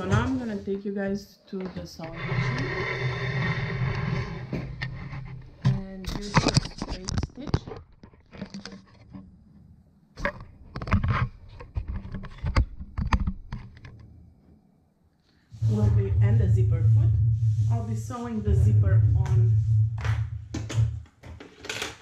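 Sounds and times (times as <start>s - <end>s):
knocks and clicks: 18.5s - 22.0s.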